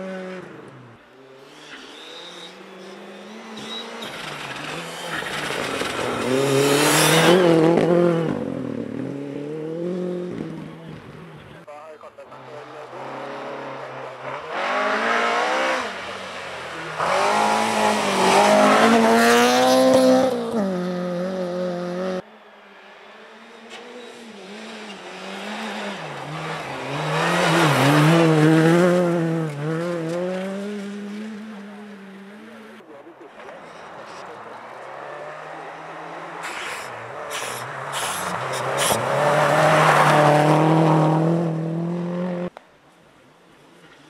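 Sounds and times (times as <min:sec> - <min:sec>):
rally car engines revving: 0:00.0 - 0:42.6.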